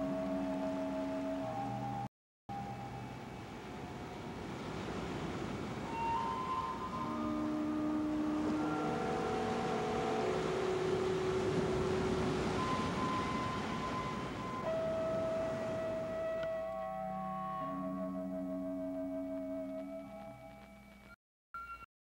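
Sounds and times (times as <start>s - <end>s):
slow music of held tones: 0.0s - 4.5s, 5.8s - 21.9s.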